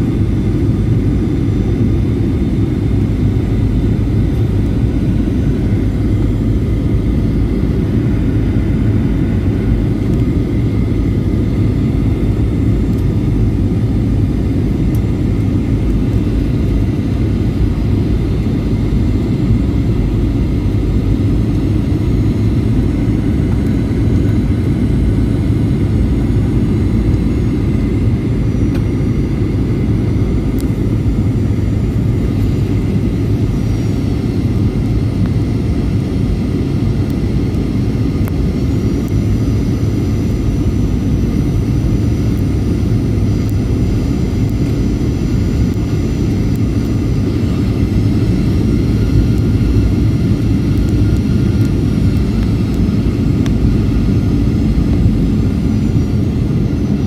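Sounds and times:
deep rumble of jet engines: 0:00.0 - 0:57.0
high engine whine: 0:00.0 - 0:57.0.

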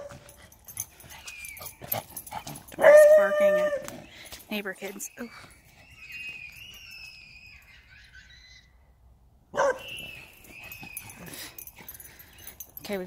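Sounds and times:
dog barking loudly: 0:02.8 - 0:03.9, 0:09.6 - 0:10.0
children screaming: 0:05.1 - 0:09.0.

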